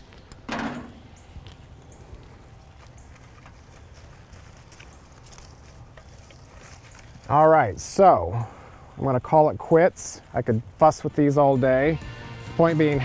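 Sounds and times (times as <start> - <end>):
flower stems rustling: 0.0 - 7.9.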